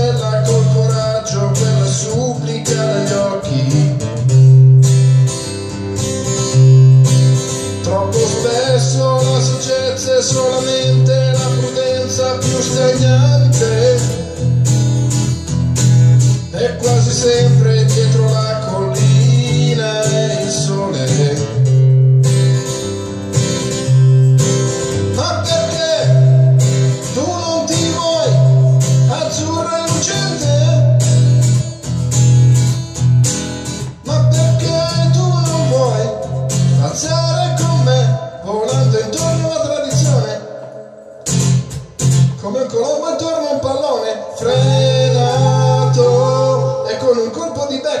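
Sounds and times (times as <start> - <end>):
person singing: 0.0 - 4.5, 7.6 - 14.6, 16.4 - 21.9, 24.9 - 31.8, 33.9 - 40.8, 42.3 - 48.0
acoustic guitar strumming: 0.0 - 48.0.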